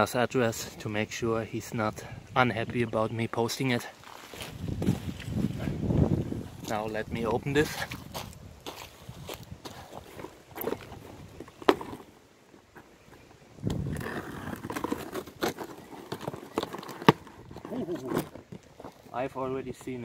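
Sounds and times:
scraping on cardboard: 0:13.7 - 0:19.1.

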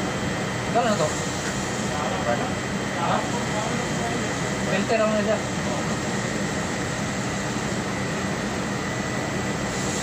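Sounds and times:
machinery hiss: 0:00.0 - 0:10.0.

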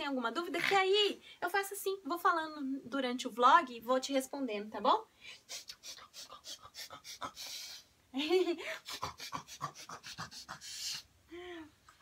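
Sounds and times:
breathy huffs: 0:05.2 - 0:07.9, 0:08.6 - 0:11.8.

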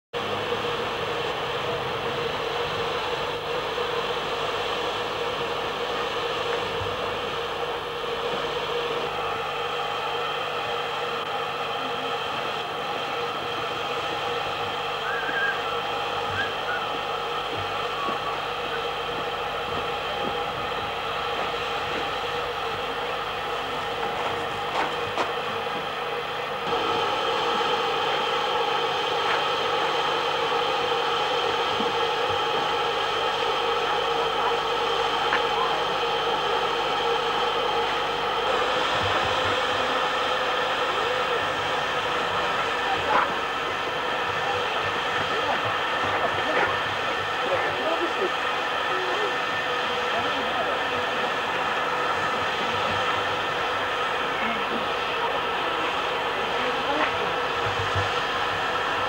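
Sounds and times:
steady machine hum: 0:00.2 - 0:59.0.

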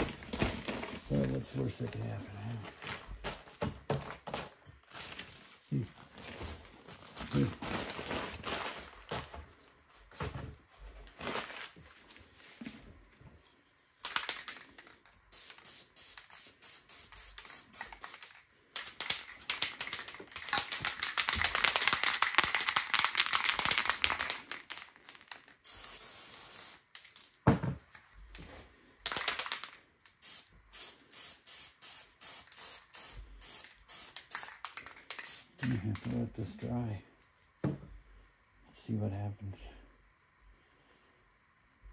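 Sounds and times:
spray paint can hissing: 0:15.3 - 0:18.4, 0:25.3 - 0:27.0, 0:30.1 - 0:36.1.

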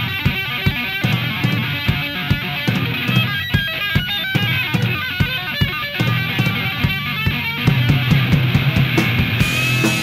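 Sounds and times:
drum beat: 0:00.0 - 0:10.0
bass: 0:05.7 - 0:10.0
electric guitar quick notes: 0:05.8 - 0:10.0.

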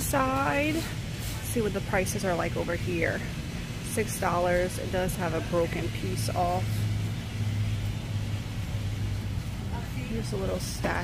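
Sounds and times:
shop room hum: 0:00.0 - 0:11.0.

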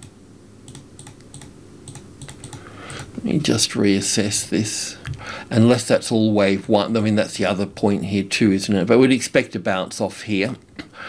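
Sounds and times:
keyboard and mouse clicks: 0:00.7 - 0:03.1.

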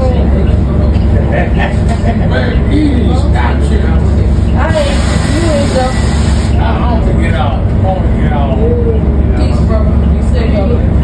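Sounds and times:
voices talking: 0:00.0 - 0:10.9
bus engine idling: 0:00.0 - 0:11.0
high hiss: 0:04.7 - 0:06.6.

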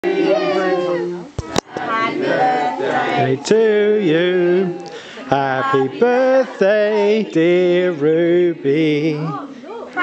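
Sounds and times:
people talking at party: 0:00.0 - 0:10.0.

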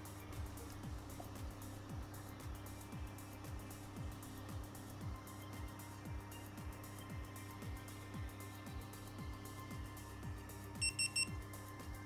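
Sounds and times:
background music with beat: 0:00.0 - 0:12.0
high-pitched electronic beeps: 0:10.8 - 0:11.3.

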